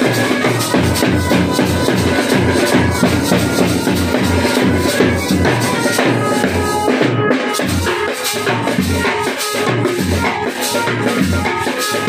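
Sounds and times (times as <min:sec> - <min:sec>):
side drums beating: 0:00.0 - 0:12.0
street band playing: 0:00.0 - 0:12.0
bass drum beating: 0:00.7 - 0:07.2.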